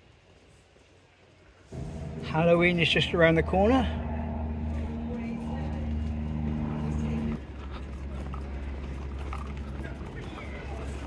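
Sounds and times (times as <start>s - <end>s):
street rumble: 1.7s - 11.0s
vehicle engine running: 1.8s - 11.0s.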